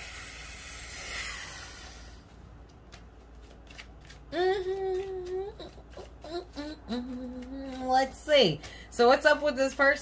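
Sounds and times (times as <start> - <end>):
long breathy hiss: 0.0 - 2.2.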